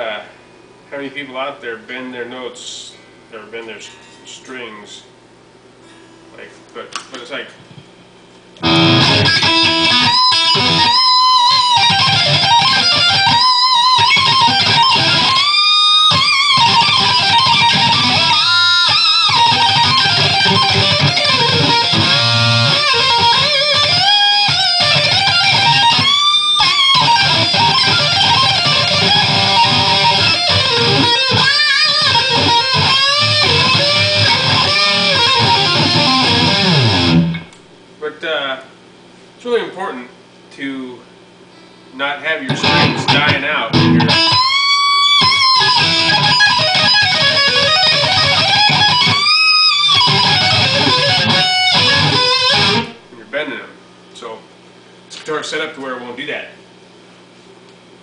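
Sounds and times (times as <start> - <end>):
electric guitar lead with bends: 8.6 - 37.6, 42.5 - 53.1.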